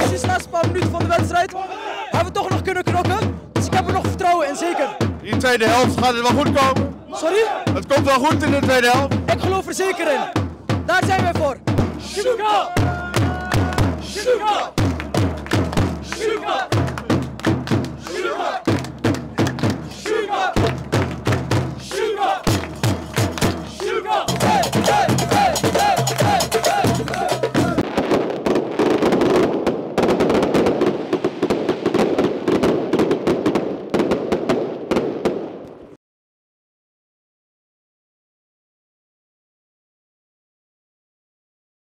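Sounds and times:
frame drum beating rhythm: 0:00.0 - 0:01.4, 0:02.2 - 0:04.4, 0:05.0 - 0:27.8
crowd shouting and chatter: 0:00.0 - 0:18.7, 0:19.3 - 0:21.2, 0:21.8 - 0:27.8
men chanting together: 0:01.5 - 0:02.2, 0:03.6 - 0:05.1, 0:06.8 - 0:08.0, 0:09.5 - 0:10.4, 0:12.0 - 0:17.3, 0:17.9 - 0:18.8, 0:19.4 - 0:21.0, 0:21.7 - 0:22.6, 0:23.5 - 0:27.8.

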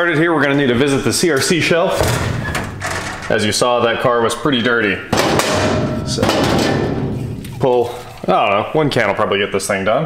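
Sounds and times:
metal spray cans clattering: 0:05.1 - 0:08.3.

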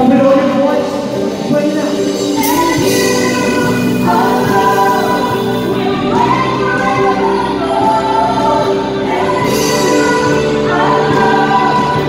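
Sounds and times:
band with keyboards playing: 0:00.0 - 0:12.0
voices singing along: 0:00.7 - 0:12.0.

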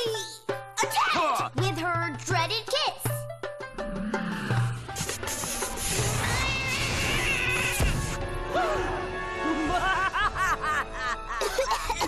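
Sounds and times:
cartoon scuffling noise: 0:05.0 - 0:08.2
cat-like yowling screech: 0:05.8 - 0:08.8.

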